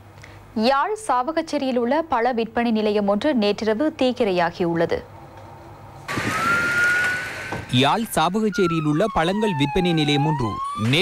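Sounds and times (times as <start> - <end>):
siren: 6.1 - 11.0.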